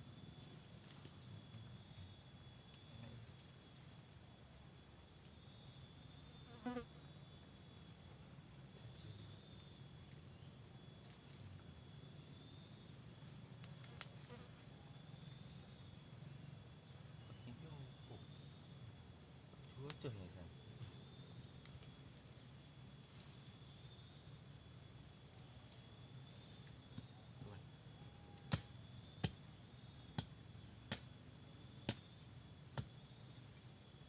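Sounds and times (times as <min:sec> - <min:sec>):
insect chorus buzzing: 0:00.0 - 0:34.0.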